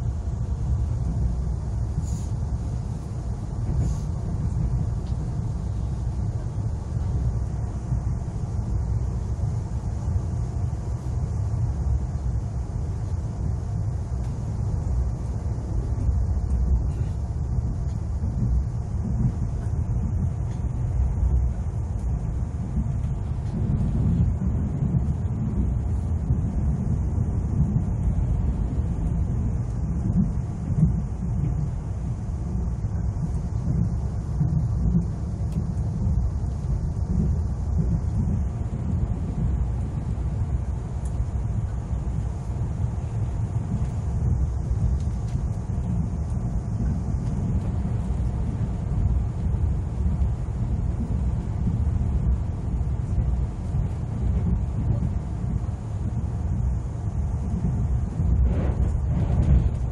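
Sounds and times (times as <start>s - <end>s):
electric train rumbling: 0.0s - 59.9s.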